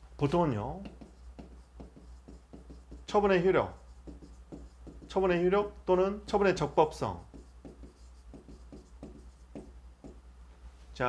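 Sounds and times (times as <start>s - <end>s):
low steady hum: 0.0s - 11.0s
stylus scratching and tapping on glass: 0.7s - 5.5s, 7.2s - 10.2s.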